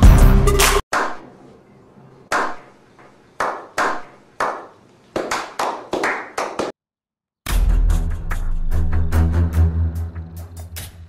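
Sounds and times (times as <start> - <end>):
slow hand claps with echo: 2.3 - 6.8.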